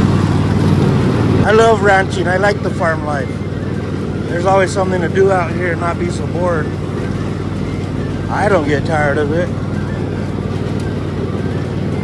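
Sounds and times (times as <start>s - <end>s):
mower blades cutting weeds: 0.0s - 12.0s
riding mower engine running: 0.0s - 12.0s.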